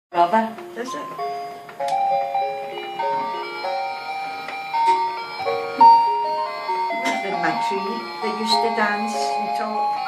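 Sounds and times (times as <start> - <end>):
simple electronic tune: 0.9 - 10.0.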